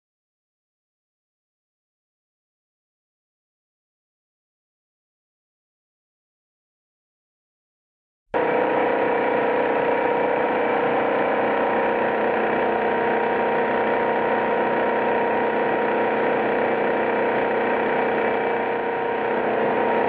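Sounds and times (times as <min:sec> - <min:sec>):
label cutting machine whirring: 0:08.4 - 0:20.0.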